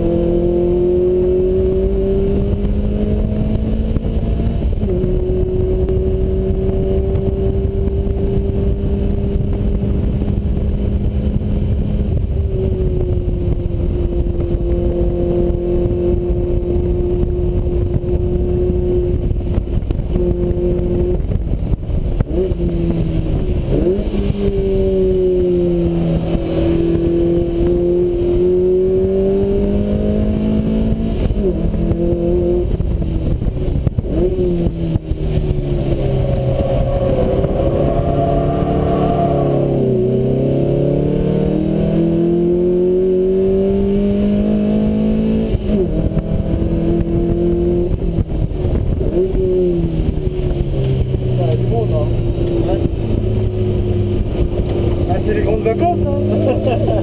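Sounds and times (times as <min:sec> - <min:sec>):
car engine accelerating through gears: 0:00.0 - 0:21.4, 0:22.2 - 0:57.0
wind rushing: 0:00.0 - 0:51.4.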